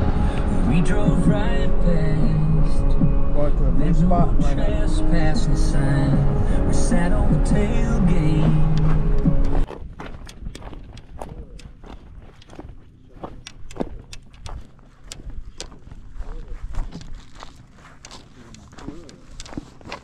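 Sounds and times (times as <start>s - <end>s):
music: 0.0s - 9.7s
footsteps on dry grass and stones: 7.6s - 20.0s.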